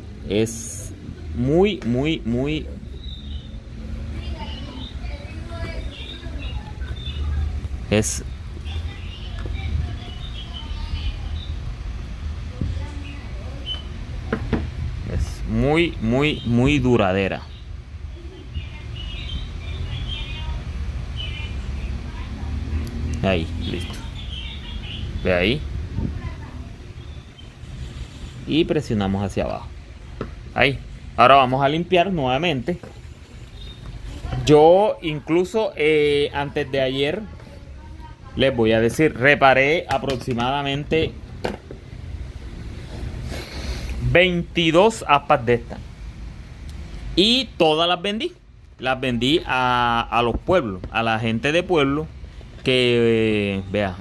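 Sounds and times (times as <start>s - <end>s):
steady low rumble: 20.4s - 34.2s.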